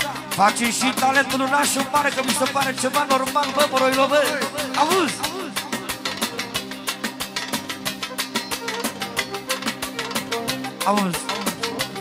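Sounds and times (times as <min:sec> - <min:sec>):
live band music with fast beat: 0:00.0 - 0:12.0.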